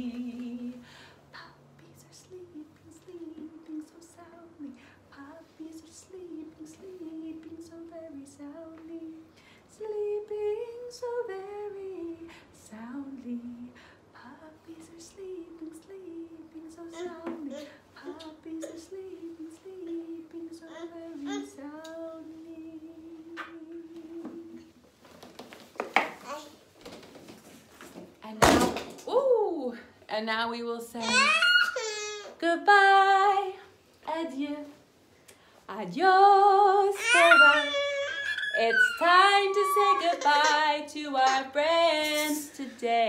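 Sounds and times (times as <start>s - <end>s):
woman singing a lullaby: 0.0s - 24.8s, 29.1s - 31.5s, 32.2s - 34.9s, 35.7s - 43.0s.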